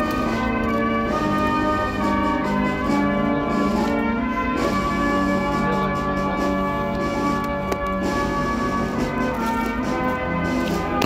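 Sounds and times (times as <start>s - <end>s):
brass band music: 0.0s - 11.0s.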